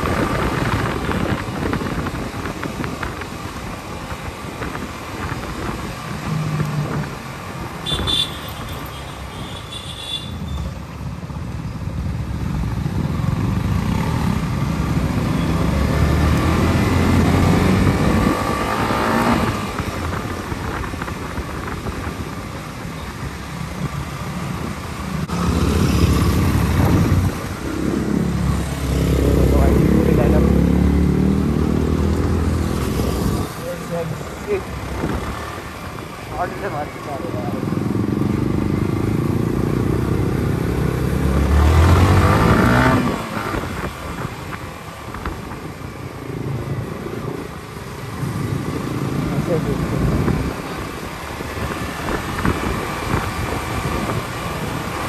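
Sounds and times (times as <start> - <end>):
other motorcycles riding: 0.0 - 55.0.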